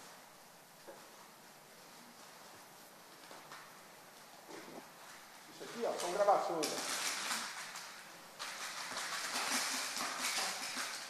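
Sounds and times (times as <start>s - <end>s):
plastic bag rustling: 1.1s - 11.0s.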